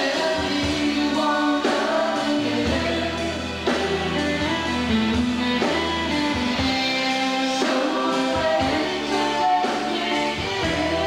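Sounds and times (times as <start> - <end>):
electric guitar chords: 0.0 - 11.0
rock band playing live: 0.0 - 11.0.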